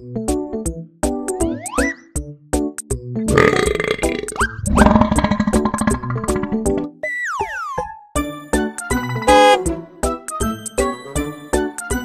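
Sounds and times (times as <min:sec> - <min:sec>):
bouncy background music: 0:00.0 - 0:12.0
rattly burp: 0:03.3 - 0:06.8.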